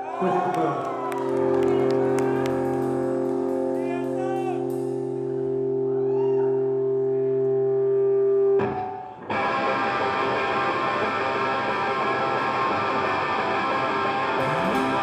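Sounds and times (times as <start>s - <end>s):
rock band with distorted guitars: 1.3s - 5.9s, 7.6s - 15.0s
sustained distorted guitar note: 1.6s - 10.2s, 14.3s - 15.0s.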